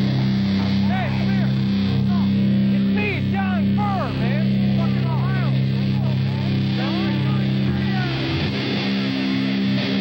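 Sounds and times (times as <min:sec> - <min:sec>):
droning guitar and bass chord: 0:00.0 - 0:10.0.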